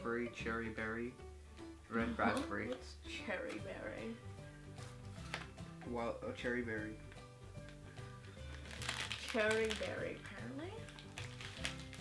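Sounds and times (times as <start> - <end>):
background music sustained notes: 0.0 - 12.0
candy packet rustling: 7.5 - 12.0.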